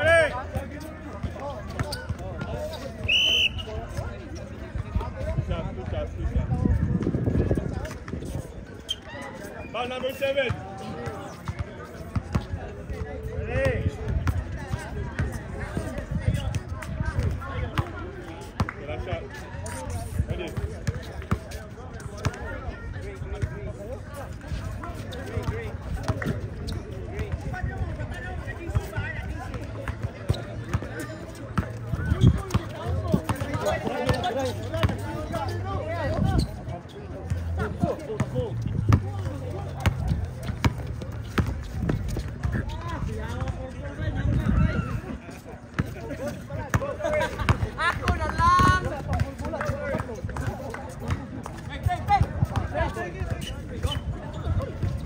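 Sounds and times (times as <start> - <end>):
players shouting and talking: 0.0 - 55.0.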